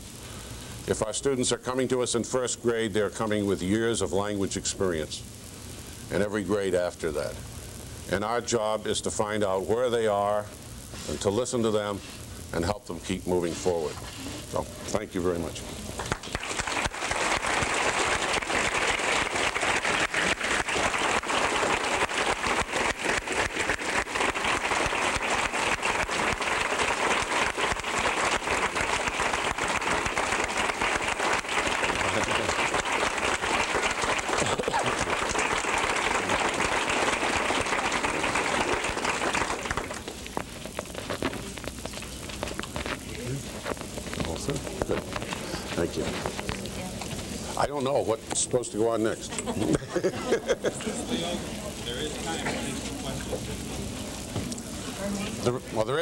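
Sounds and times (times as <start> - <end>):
large audience applauding: 16.0 - 40.2.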